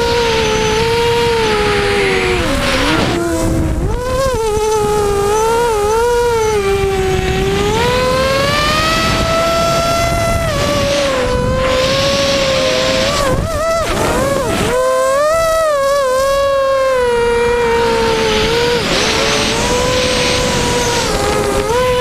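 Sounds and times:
drone propellers buzzing whine: 0.0s - 22.0s.

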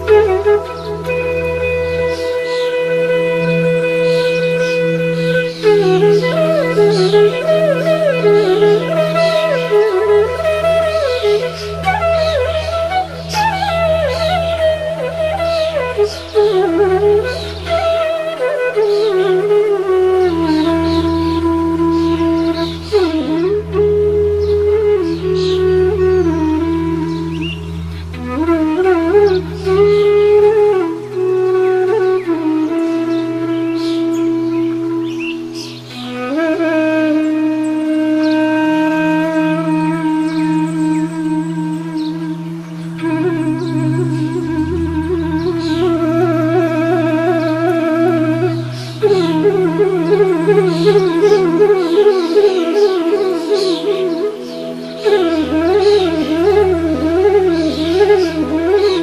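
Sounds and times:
bamboo flute slow melody: 0.0s - 59.0s
birds chirping: 31.5s - 59.0s
steady low drone: 41.8s - 51.8s.

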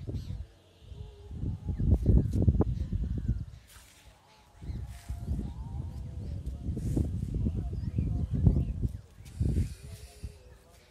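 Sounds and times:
wind on microphone: 0.0s - 3.9s, 4.5s - 10.9s.

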